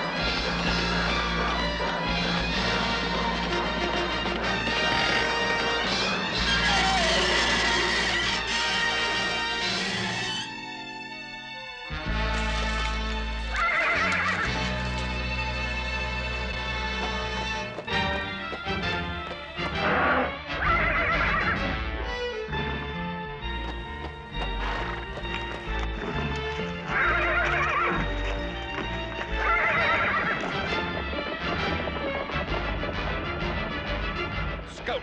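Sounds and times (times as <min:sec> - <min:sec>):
orchestral background music: 0:00.0 - 0:35.0
horse whinnying: 0:06.3 - 0:10.4, 0:13.4 - 0:14.8, 0:19.7 - 0:21.8, 0:26.8 - 0:28.4, 0:29.2 - 0:31.0.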